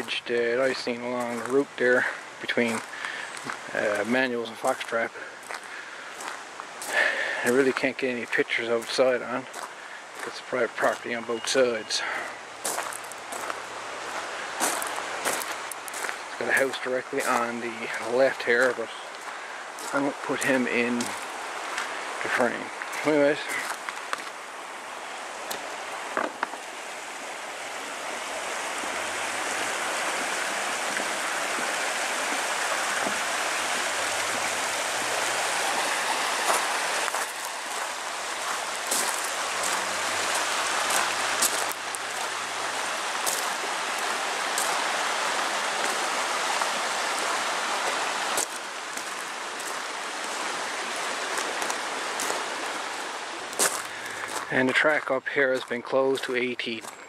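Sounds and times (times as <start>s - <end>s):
water rushing over stones: 0.0s - 55.4s.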